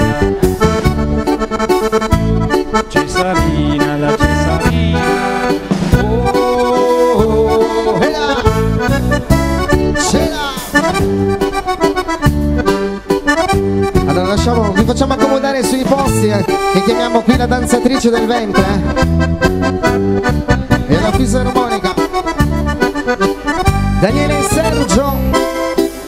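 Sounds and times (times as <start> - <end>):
repeating bass beat: 0.0 - 1.3, 2.1 - 11.5
accordions playing fast tune: 0.0 - 26.0.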